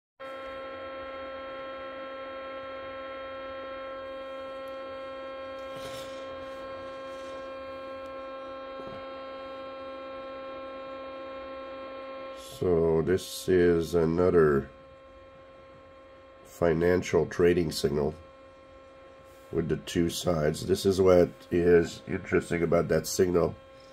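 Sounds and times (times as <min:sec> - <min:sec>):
chord of fixed radio tones: 0:00.3 - 0:23.9.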